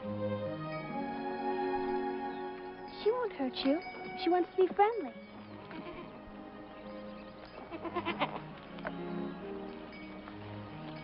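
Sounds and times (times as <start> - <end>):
background music: 0.0 - 11.0
goat bleating: 5.6 - 6.2, 7.6 - 8.5.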